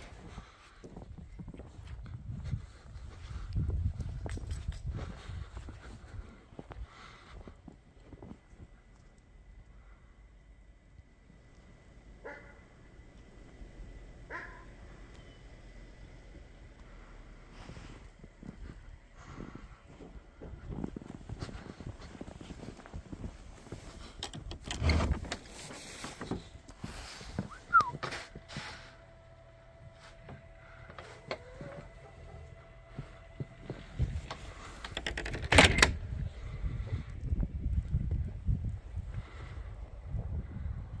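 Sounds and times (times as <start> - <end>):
footsteps in snow: 16.6 - 24.2, 31.0 - 34.8.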